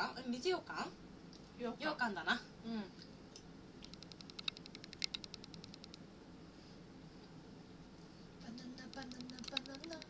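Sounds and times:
rapid sharp clicks: 3.8 - 6.0, 8.6 - 10.0.

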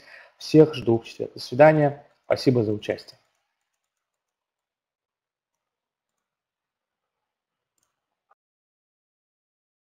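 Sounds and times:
faint clicks: 5.5 - 6.3, 7.8 - 8.0.

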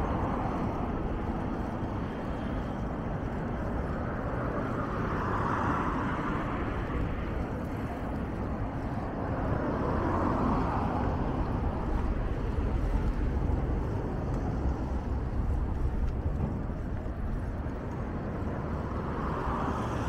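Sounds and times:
cars passing: 0.0 - 20.0
low traffic rumble: 0.0 - 20.0.

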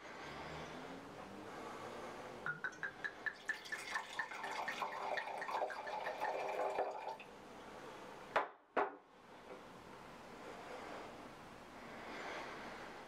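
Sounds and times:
bottle knocking on glass tabletop: 2.5 - 3.5.

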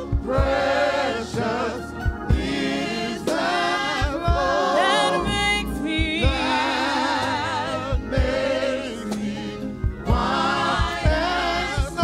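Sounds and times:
women singing in harmony: 0.0 - 12.0.

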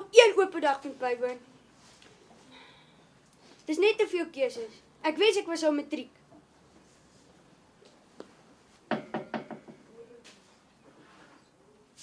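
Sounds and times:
knocking: 8.9 - 9.8.

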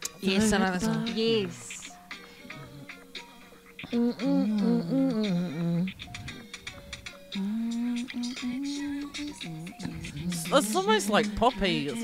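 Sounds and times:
woman humming: 0.2 - 3.1, 3.8 - 11.5.

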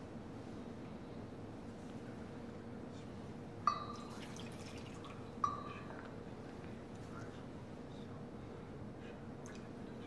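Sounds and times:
glass clinking on metal chalice: 3.7 - 6.1
wine trickling into chalice: 3.8 - 5.8.

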